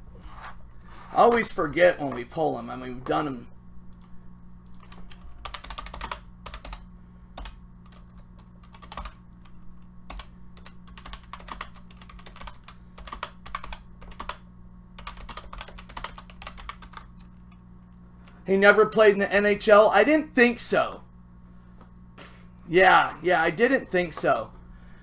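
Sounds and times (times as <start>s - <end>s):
steady low hum: 0.0s - 25.0s
typing on computer keyboard: 4.7s - 6.8s, 7.4s - 9.2s, 10.1s - 14.4s, 15.0s - 17.2s.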